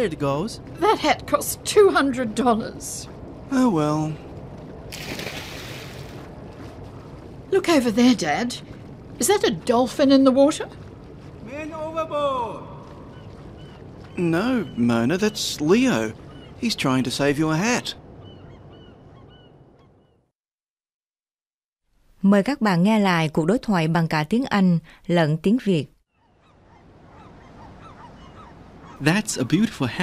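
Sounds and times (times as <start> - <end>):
rushing background ambience: 0.0 - 19.8
short bird calls: 26.2 - 29.6.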